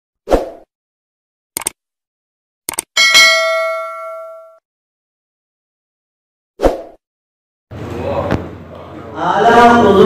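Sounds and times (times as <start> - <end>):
quick double clicks: 1.6 - 1.8, 2.7 - 2.9
notification bell ringing: 3.0 - 4.6.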